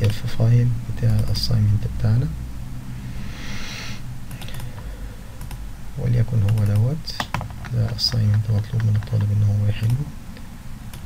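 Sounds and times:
low steady hum: 0.0s - 11.0s
computer mouse clicks: 4.3s - 5.6s, 6.4s - 10.0s.

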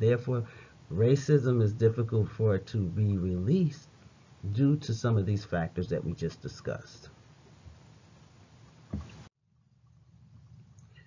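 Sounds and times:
brief low thump: 8.9s - 9.2s.

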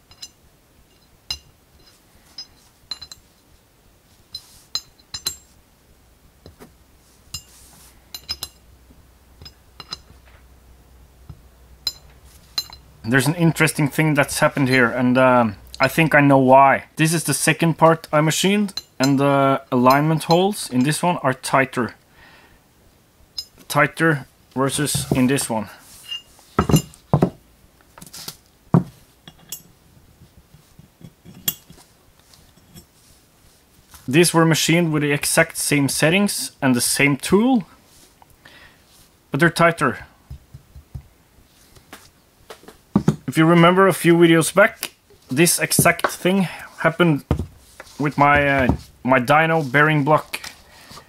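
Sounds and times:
metal pin clinking against metal: 0.0s - 3.3s, 4.3s - 5.5s, 7.3s - 8.7s, 9.4s - 10.2s, 11.8s - 13.4s, 23.4s - 23.6s, 29.2s - 29.7s, 31.0s - 31.8s.

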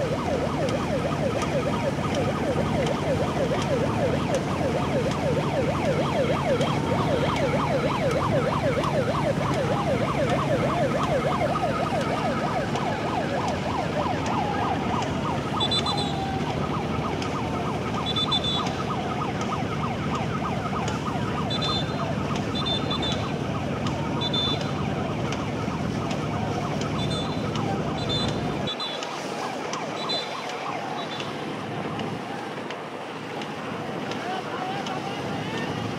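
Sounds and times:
warbling siren-like tone: 0.0s - 33.7s.

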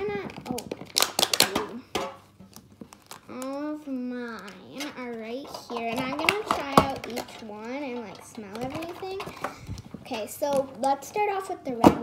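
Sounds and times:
child making wordless vocal sounds: 3.3s - 9.3s.

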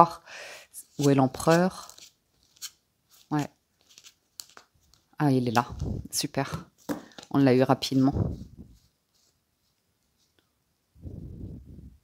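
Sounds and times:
cards clicking and sliding: 1.0s - 5.0s.

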